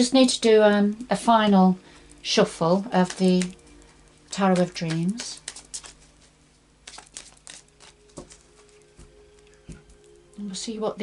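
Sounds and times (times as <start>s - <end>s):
cards shuffled by hand: 2.8s - 10.2s.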